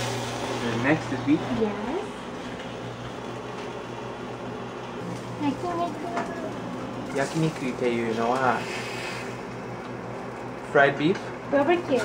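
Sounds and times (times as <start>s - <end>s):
vegetables sizzling in a pan: 0.0s - 2.5s, 5.0s - 9.5s.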